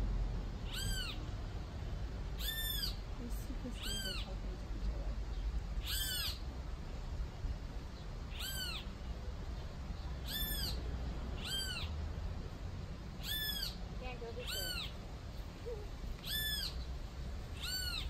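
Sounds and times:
high mewing call: 0:00.6 - 0:01.3, 0:02.4 - 0:03.0, 0:03.7 - 0:04.4, 0:05.8 - 0:06.5, 0:08.3 - 0:09.0, 0:10.2 - 0:10.8, 0:11.4 - 0:12.0, 0:13.2 - 0:15.0, 0:15.6 - 0:16.9, 0:17.5 - 0:18.0.

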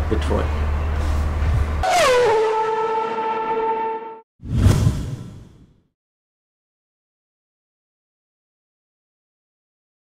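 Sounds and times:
whoosh-and-hit transition effect: 0:04.4 - 0:05.8.

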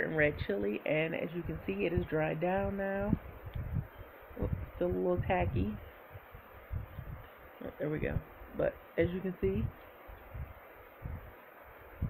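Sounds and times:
soft low thumps: 0:00.2 - 0:12.0.

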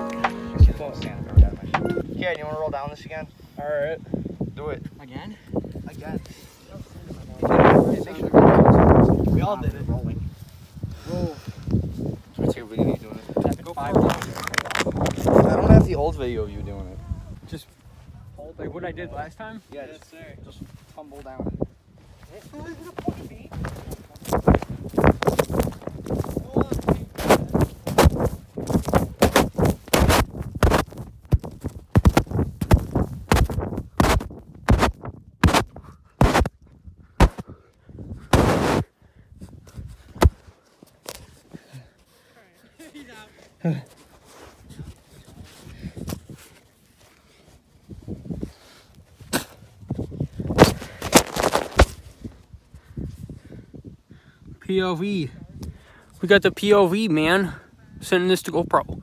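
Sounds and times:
camera thudding on sand: 0:23.6 - 0:36.6, 0:37.2 - 0:37.5, 0:38.2 - 0:38.9, 0:39.8 - 0:41.2, 0:50.5 - 0:52.2.

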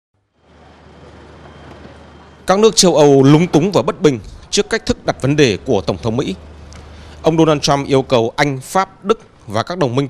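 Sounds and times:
vehicle engine idling: 0:00.5 - 0:09.6.

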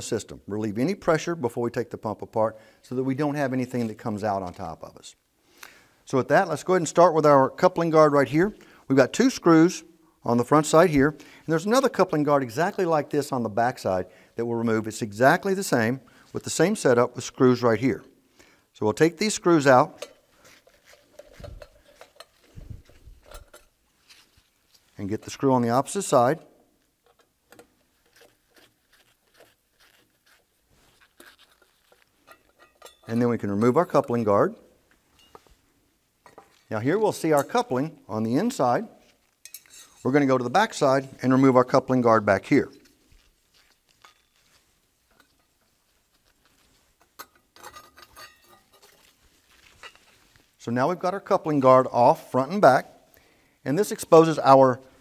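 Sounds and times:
faint metallic clicks and clinks: 0:20.0 - 0:24.9, 0:31.2 - 0:35.6, 0:39.2 - 0:40.1, 0:43.6 - 0:49.1
small ringing clinks: 0:32.2 - 0:33.2, 0:35.1 - 0:35.5.

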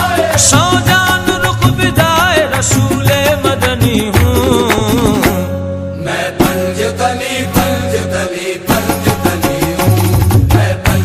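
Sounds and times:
hand drum strikes: 0:00.4 - 0:05.5.

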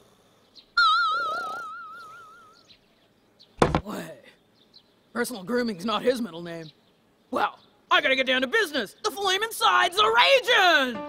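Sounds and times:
sharp loud thump: 0:03.6 - 0:03.9.

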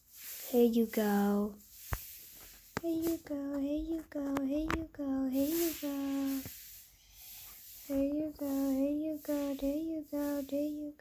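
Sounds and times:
faint hiss: 0:00.0 - 0:11.0
child chanting singsong: 0:02.8 - 0:11.0.

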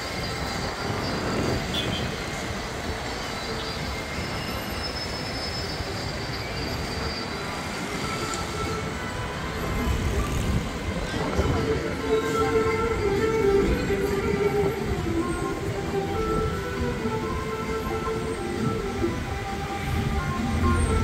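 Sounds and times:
heavy vehicle traffic rumble: 0:00.0 - 0:21.0
faint high squeals: 0:02.9 - 0:16.6.

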